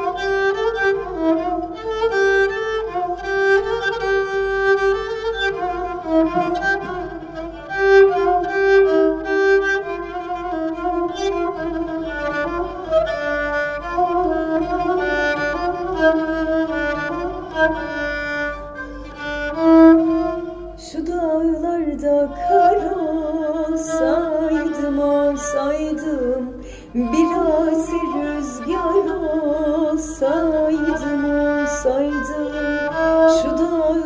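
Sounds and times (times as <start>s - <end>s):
bowed spike fiddle melody: 0.0s - 21.0s, 21.9s - 34.0s.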